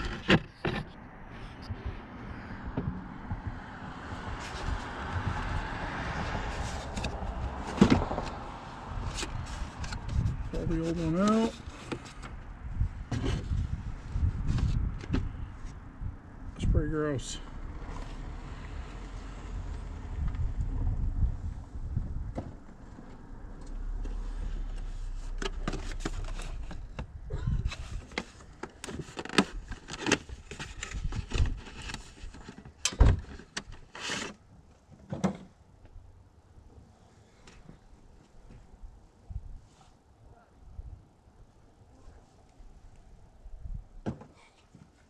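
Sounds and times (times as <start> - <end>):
low rumble: 19.4 - 28.1
cardboard box handling noise: 24.0 - 34.4.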